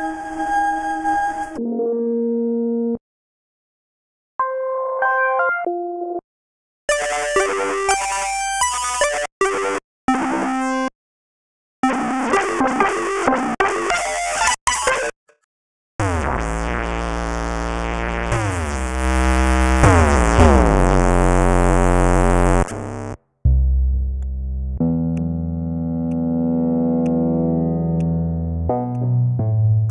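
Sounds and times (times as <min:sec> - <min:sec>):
heavy synth bass: 0:16.0 - 0:26.9
gritty synthesizer notes: 0:16.0 - 0:29.1.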